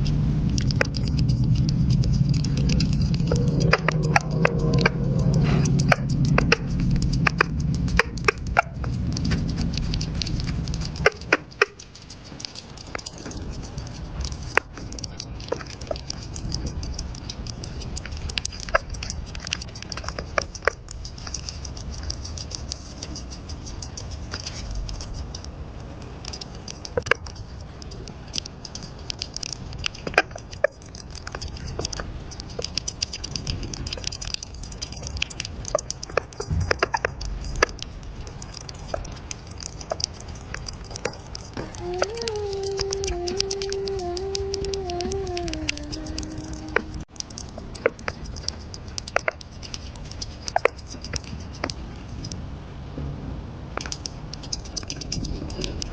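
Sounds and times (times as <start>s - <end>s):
small animal chewing clicks: 0.0s - 52.4s, 53.8s - 55.9s.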